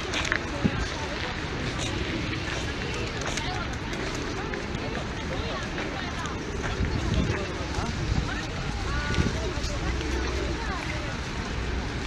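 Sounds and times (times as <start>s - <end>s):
city noise: 0.0s - 12.0s
crowd talking: 0.0s - 12.0s.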